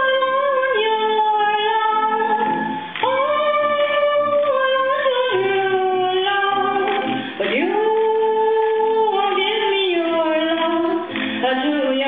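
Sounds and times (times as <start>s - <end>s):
woman singing long held notes: 0.0s - 12.0s.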